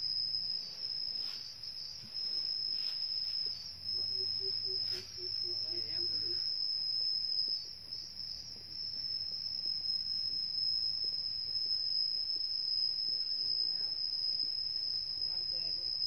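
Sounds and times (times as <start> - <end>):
shrill insect chorus: 0.0 - 16.0.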